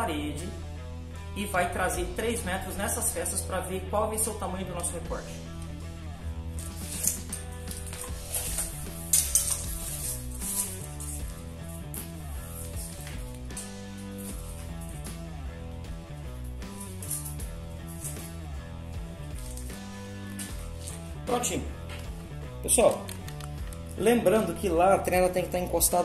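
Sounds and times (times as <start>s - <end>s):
background music: 0.0s - 26.0s
tape measure clicks and rattles: 6.6s - 11.2s, 16.6s - 18.3s.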